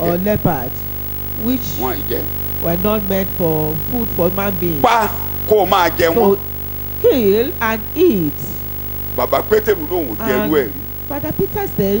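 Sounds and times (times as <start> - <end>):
electrical mains hum: 0.0 - 12.0
man's voice: 4.8 - 6.4, 9.2 - 10.9.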